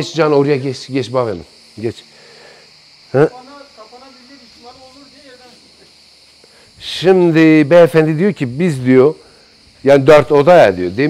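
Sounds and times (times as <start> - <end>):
cicadas buzzing: 0.0 - 11.0.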